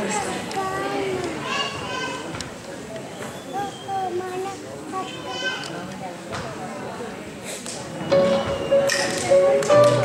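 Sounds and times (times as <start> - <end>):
children's voices: 0.0 - 2.6, 3.4 - 5.9
people talking: 0.0 - 10.0.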